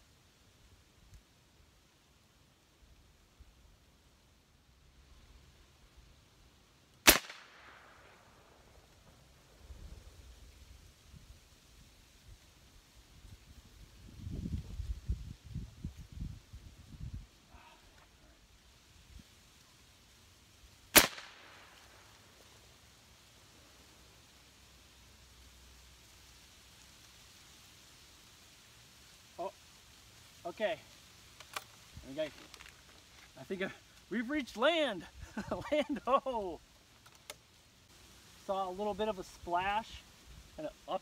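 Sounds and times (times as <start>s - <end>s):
air rifle firing: 7.0s - 8.0s, 20.9s - 21.7s.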